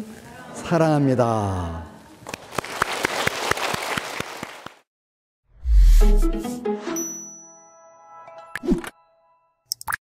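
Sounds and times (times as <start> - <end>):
audience applauding: 2.3 - 4.9.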